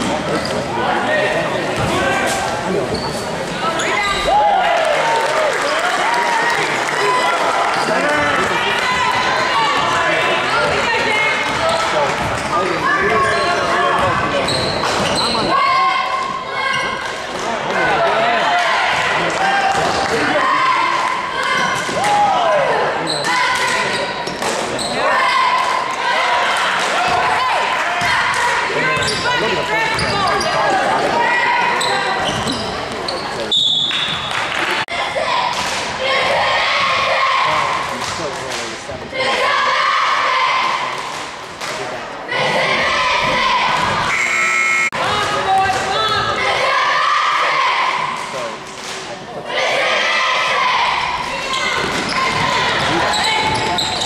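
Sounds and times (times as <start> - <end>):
crowd chatter and shouts: 0.0 - 54.0
referee's whistle: 33.5 - 34.2, 44.1 - 45.0.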